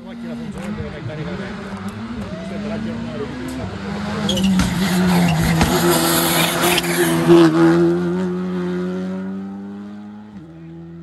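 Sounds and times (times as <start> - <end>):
rally car engine revving: 0.0 - 11.0.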